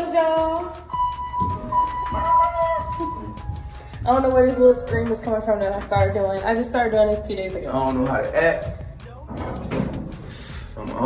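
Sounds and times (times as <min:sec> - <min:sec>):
woman squealing: 0:02.0 - 0:03.5.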